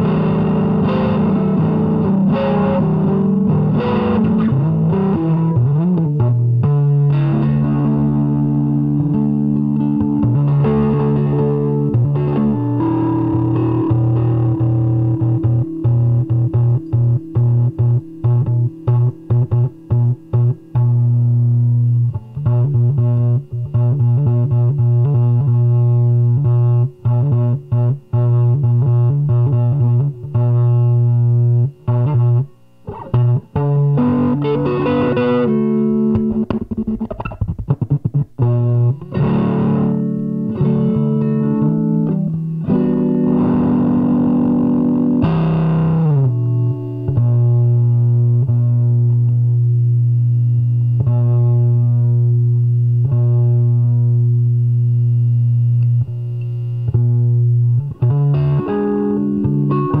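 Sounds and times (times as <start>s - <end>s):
distorted electric guitar: 0.0s - 60.0s.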